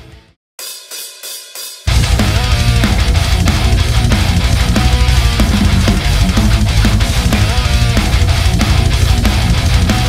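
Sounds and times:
heavy metal band playing: 0.0s - 0.4s, 1.8s - 10.0s.

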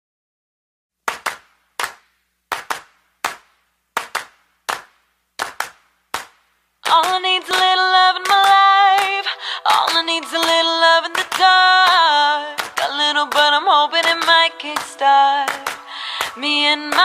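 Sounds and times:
handclaps keeping a beat: 1.0s - 17.0s
voices singing in harmony: 6.9s - 17.0s.

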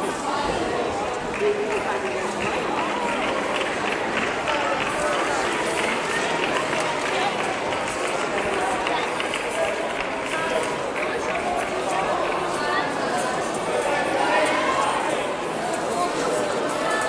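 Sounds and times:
crowd talking: 0.0s - 17.0s.

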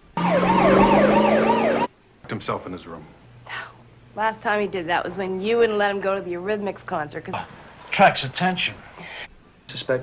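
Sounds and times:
police siren fast yelp: 0.2s - 1.9s.

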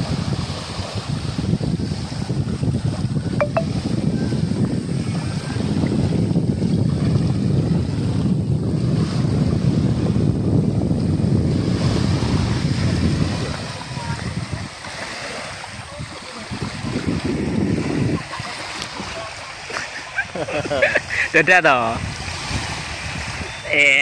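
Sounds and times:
small waves washing on beach: 0.0s - 24.0s
wind on microphone: 0.0s - 24.0s.

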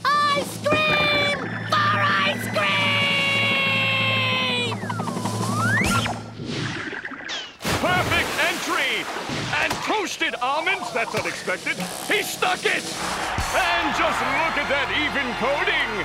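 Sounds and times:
swooping whistle glide: 4.7s - 6.3s.

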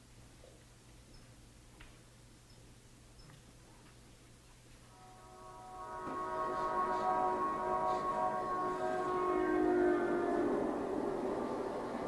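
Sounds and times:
low rumble: 4.9s - 12.0s
sustained chord of tones: 4.9s - 12.0s.

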